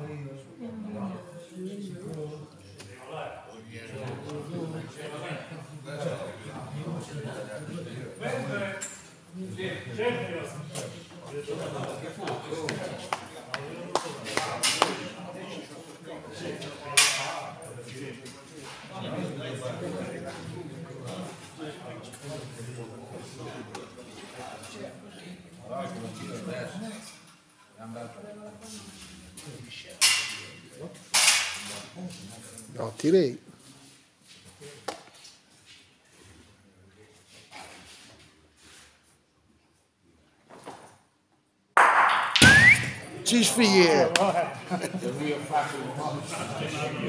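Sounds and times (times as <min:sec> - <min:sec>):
bocce ball knock: 0:41.8 - 0:42.9
rising whistle-like tone: 0:42.4 - 0:43.1.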